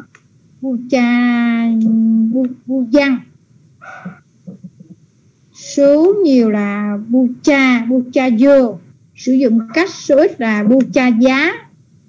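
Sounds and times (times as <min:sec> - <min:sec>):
person speaking: 0:00.0 - 0:05.0, 0:05.6 - 0:11.7.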